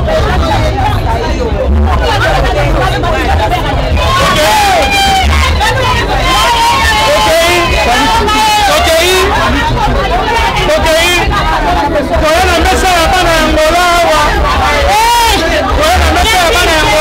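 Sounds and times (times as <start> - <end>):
loud crowd hubbub: 0.0 - 17.0.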